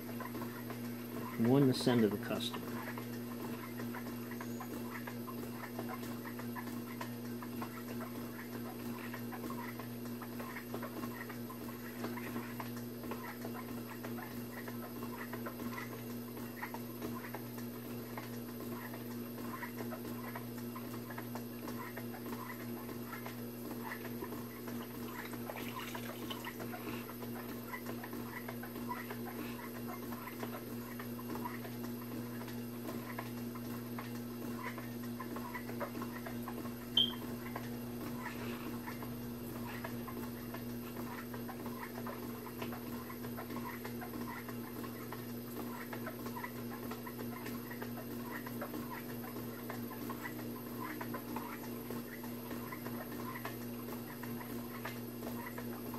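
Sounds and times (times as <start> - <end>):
electric pottery wheel humming: 0.0 - 55.9.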